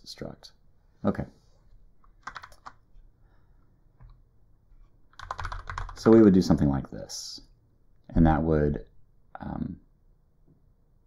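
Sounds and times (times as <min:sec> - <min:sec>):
typing on computer keyboard: 0:02.2 - 0:02.8, 0:05.1 - 0:06.3.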